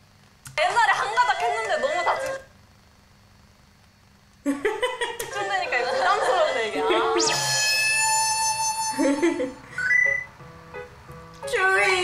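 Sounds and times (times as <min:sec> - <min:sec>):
held electronic tone: 0:07.0 - 0:09.2, 0:09.8 - 0:10.3.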